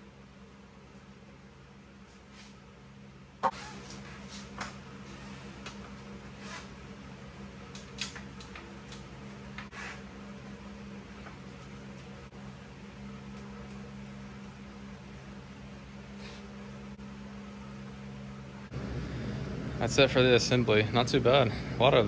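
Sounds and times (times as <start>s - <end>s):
fan humming: 0.0s - 22.0s.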